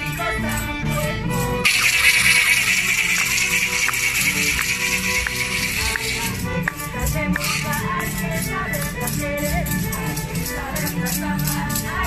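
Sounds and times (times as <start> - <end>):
folk dance music on violins and harp: 0.0 - 12.0
hand rattles shaking: 1.6 - 12.0.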